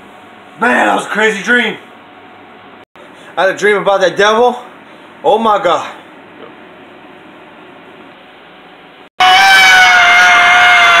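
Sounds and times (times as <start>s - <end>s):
high-pitched scream: 9.2s - 11.0s.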